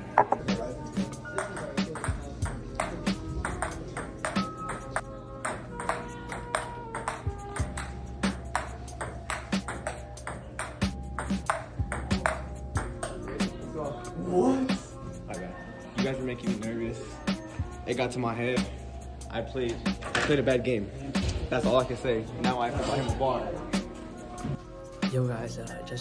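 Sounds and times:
background music with beat: 0.0 - 26.0.

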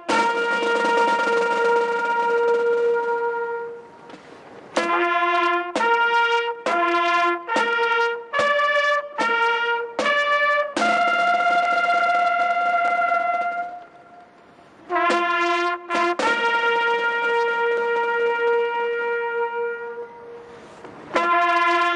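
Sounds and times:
solo trumpet mournful melody: 0.0 - 21.9.

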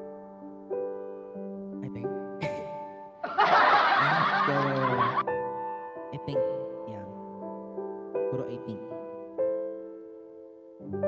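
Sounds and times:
soft background music: 0.0 - 11.0
man laughing into microphone: 2.4 - 5.2.

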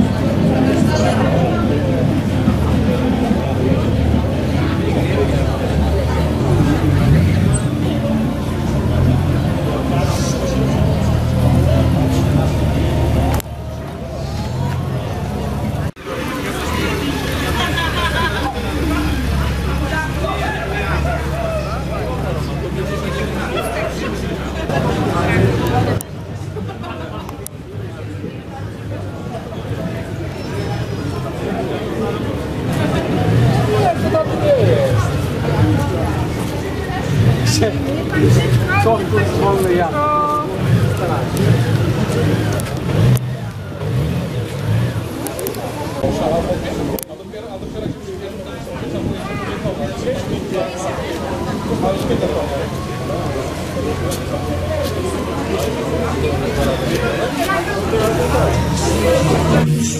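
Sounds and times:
people chatting: 0.0 - 59.9
people talking: 0.0 - 59.9.

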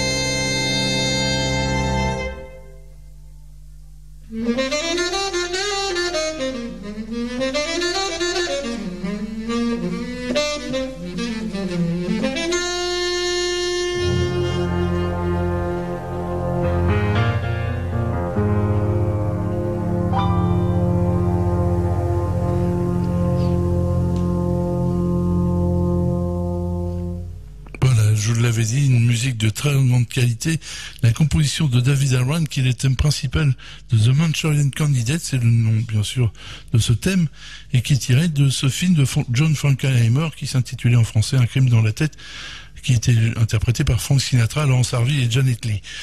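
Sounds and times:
solo wind instrument jazz melody: 0.0 - 3.0, 4.2 - 27.4.

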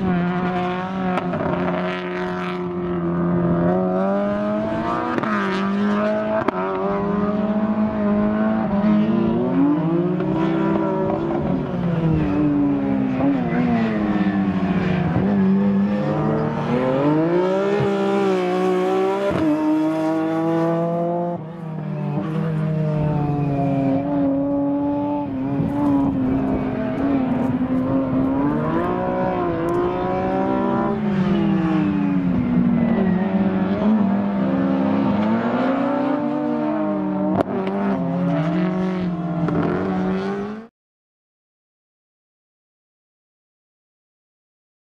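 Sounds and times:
car engine revving: 0.0 - 21.6, 22.2 - 40.7.

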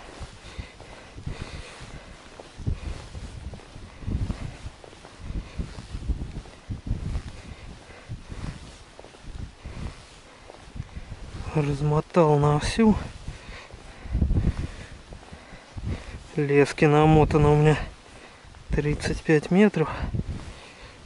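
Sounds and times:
rustling of gloves and clothing: 0.0 - 21.0.

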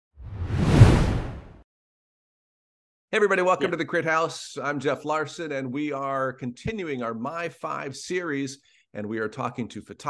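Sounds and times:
deep noisy whoosh: 0.2 - 1.6.

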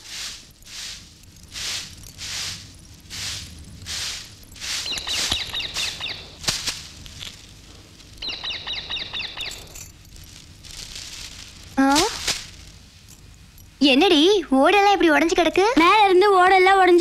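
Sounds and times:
soft swells of noise: 0.0 - 17.0
birds chirping: 4.5 - 6.4, 7.8 - 10.0.

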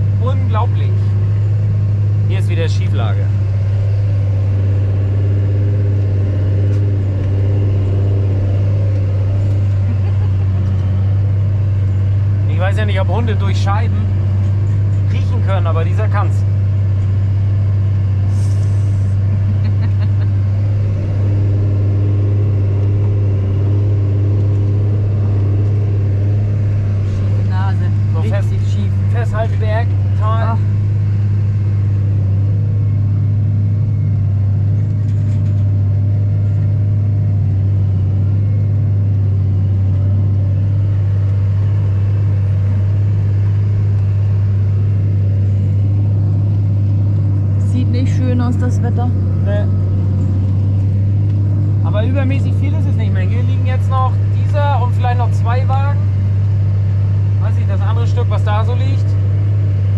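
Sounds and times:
tractor engine droning: 0.0 - 59.9.

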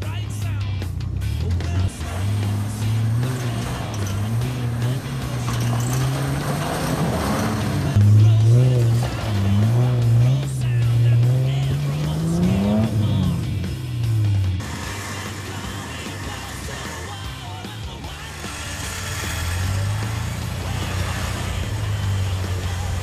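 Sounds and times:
car engine revving under load: 0.8 - 23.0.

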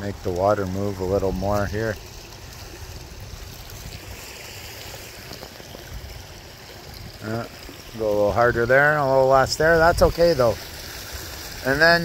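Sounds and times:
stream trickling over stones: 0.0 - 12.0.

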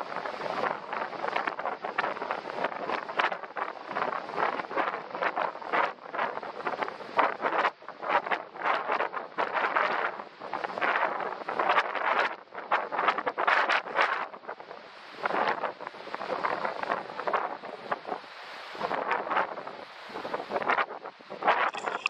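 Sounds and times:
wind buffeting microphone: 0.0 - 18.2.

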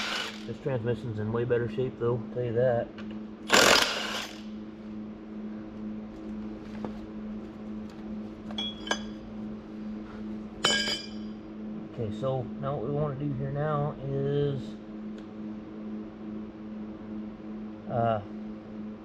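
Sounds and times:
impact wrench burst: 0.0 - 0.5, 3.5 - 4.5
steady hum: 0.0 - 19.0
ringing metal clank: 8.5 - 9.2, 10.6 - 11.4.

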